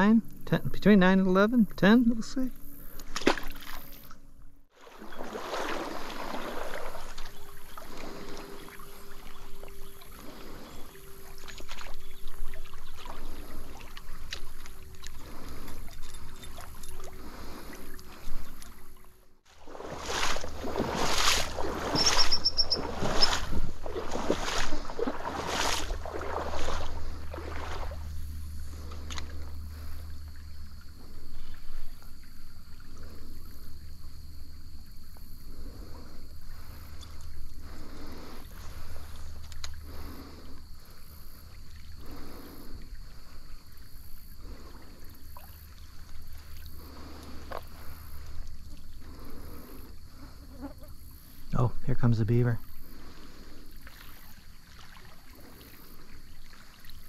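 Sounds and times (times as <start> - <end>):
water splashing and sloshing: 2.6 - 57.0.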